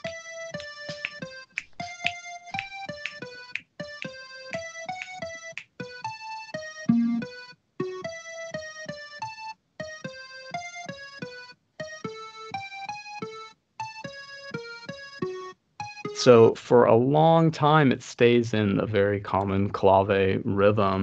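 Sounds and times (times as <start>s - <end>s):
short electronic keyboard notes: 6.9s - 7.4s.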